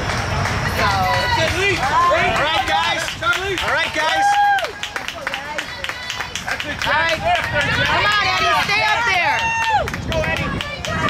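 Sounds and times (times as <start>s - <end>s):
spectators shouting encouragement: 0.8s - 4.9s, 5.5s - 11.0s.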